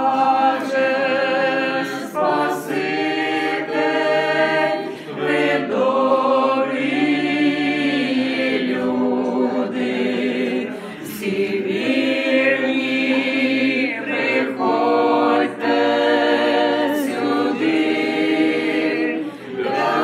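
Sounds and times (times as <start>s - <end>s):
group singing a cappella: 0.0s - 20.0s.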